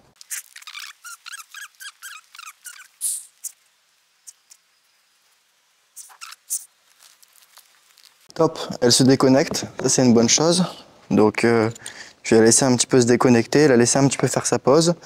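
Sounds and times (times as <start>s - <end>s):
high-pitched squeaks: 0.2s - 3.6s, 6.0s - 6.7s.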